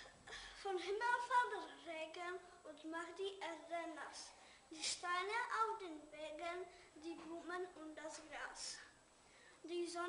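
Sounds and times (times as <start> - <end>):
boy reciting: 0.0 - 9.0, 9.6 - 10.0.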